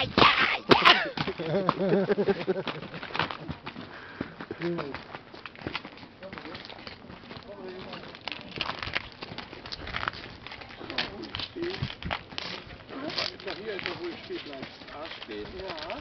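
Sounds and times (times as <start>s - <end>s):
people talking indistinctly: 0.0s - 1.0s.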